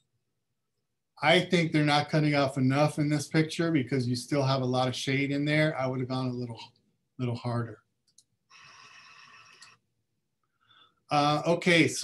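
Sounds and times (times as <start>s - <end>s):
faint breath: 8.5s - 11.1s.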